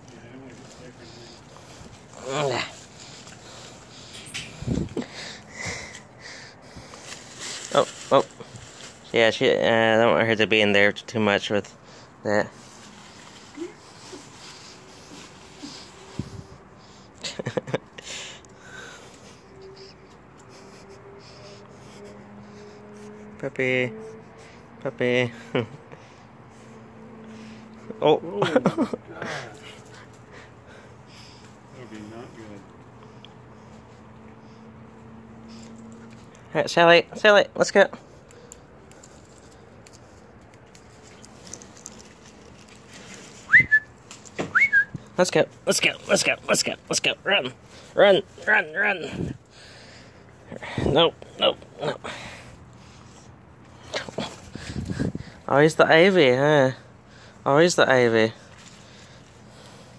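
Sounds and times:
puppy sniffing and snorting: 0.0s - 9.2s, 11.7s - 36.5s, 38.0s - 55.5s, 58.3s - 59.9s.

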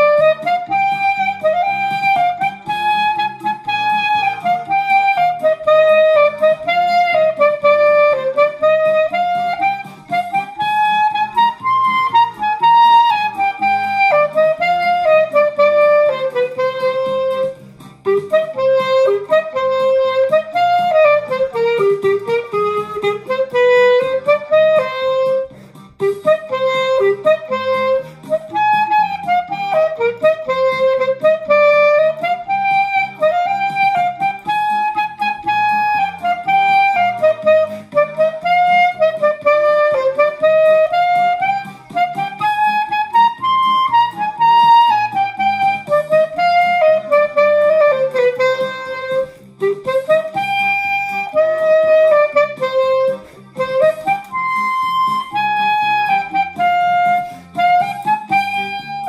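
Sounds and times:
clarinet playing folk melody: 0.0s - 59.0s.

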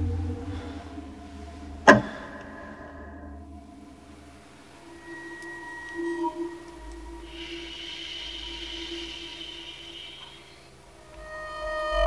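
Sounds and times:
deep rumble: 0.0s - 12.0s
eerie horror score drone: 0.0s - 12.0s
high-pitched hissing layer: 4.2s - 11.1s.

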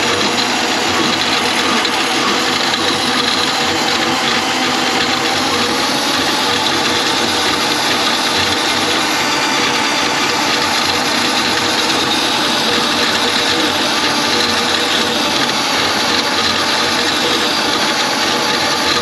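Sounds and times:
drain auger cable rattling: 0.0s - 19.0s.

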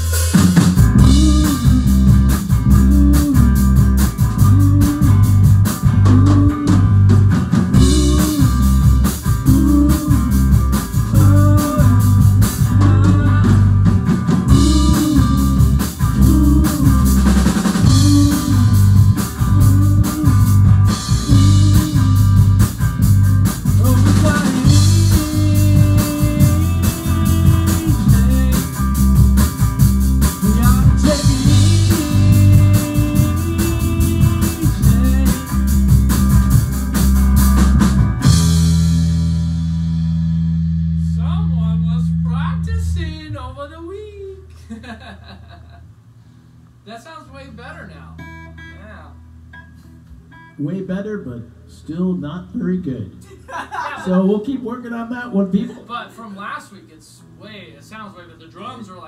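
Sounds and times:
electric guitar: 0.0s - 42.4s
steady drum beat: 0.0s - 43.0s
repeating bass riff: 0.0s - 43.3s.

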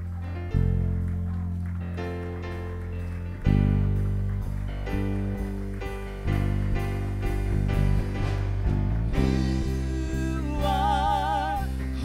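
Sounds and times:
band playing softly: 0.0s - 12.0s
sustained low keyboard chord: 0.0s - 12.0s.

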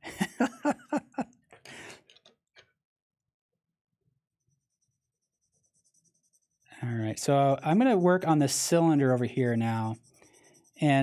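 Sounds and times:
person chuckling: 0.0s - 2.0s
puff of breath: 1.6s - 2.1s
pencil scratching on paper: 4.5s - 11.0s.

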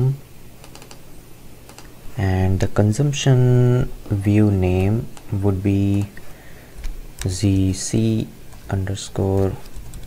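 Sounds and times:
keyboard keystrokes: 0.6s - 1.0s.

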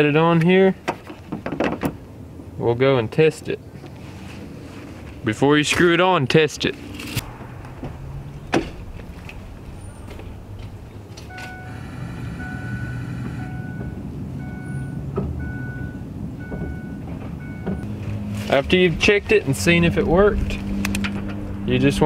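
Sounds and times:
low steady truck hum: 0.0s - 22.0s
electronic warning chime beeping: 11.3s - 17.8s.

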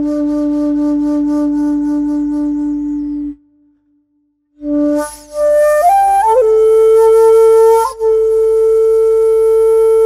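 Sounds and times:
bamboo flute long note: 0.0s - 3.5s, 4.6s - 10.0s.

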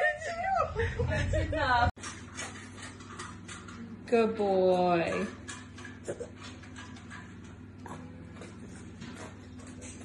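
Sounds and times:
low steady hum: 0.0s - 9.8s.

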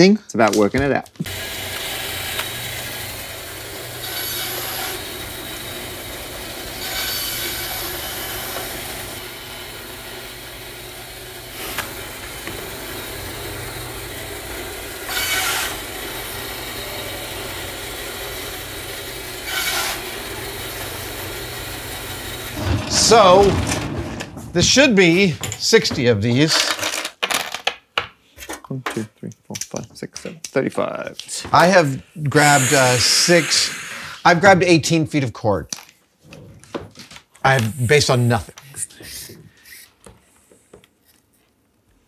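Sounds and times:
bandsaw cutting plastic tube: 1.2s - 24.8s
bandsaw hum: 1.2s - 26.1s, 31.7s - 34.3s.

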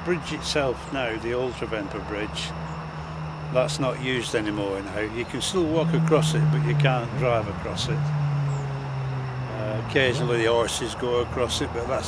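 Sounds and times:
man talking: 0.0s - 2.5s, 3.5s - 8.0s, 9.5s - 12.0s
road traffic hum: 0.0s - 12.0s
vehicle engine droning: 0.0s - 12.0s.

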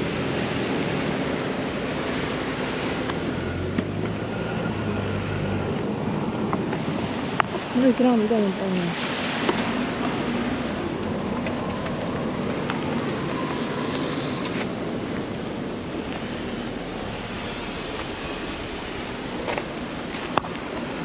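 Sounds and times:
wind rushing across microphone: 0.0s - 21.0s.

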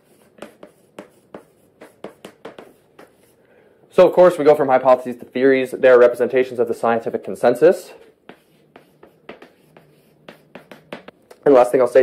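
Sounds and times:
chalk writing on blackboard: 0.0s - 3.4s, 8.0s - 11.2s.

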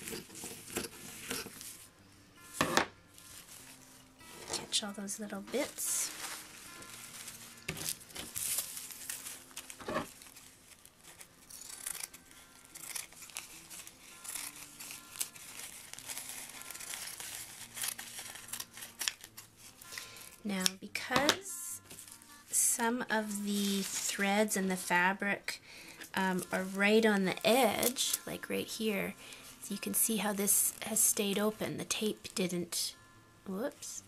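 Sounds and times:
tape crinkling and rustling: 0.0s - 1.9s, 3.2s - 21.2s, 23.2s - 25.1s
acoustic guitar music: 0.0s - 34.0s
scissors snipping: 11.5s - 16.0s, 17.8s - 19.3s.

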